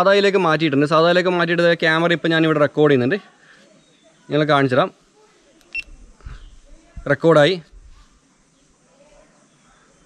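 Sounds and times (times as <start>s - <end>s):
camera beep: 5.7s - 6.0s.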